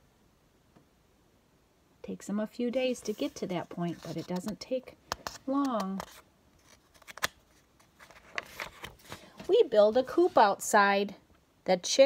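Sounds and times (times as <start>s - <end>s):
paper page turning: 3.0s - 4.6s, 5.2s - 10.4s.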